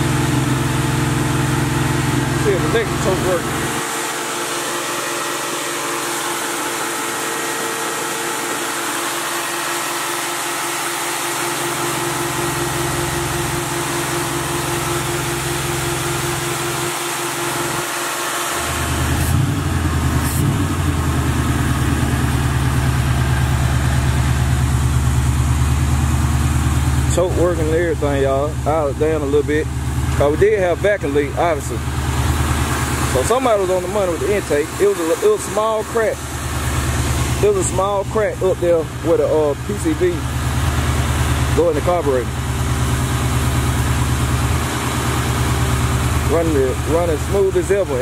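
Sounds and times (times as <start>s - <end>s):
car engine idling: 0.0s - 48.0s.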